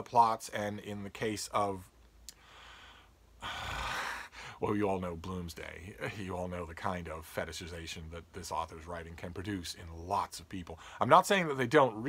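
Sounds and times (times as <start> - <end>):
mouth click: 2.2 - 2.4
man inhaling: 2.3 - 4.6, 10.8 - 11.0.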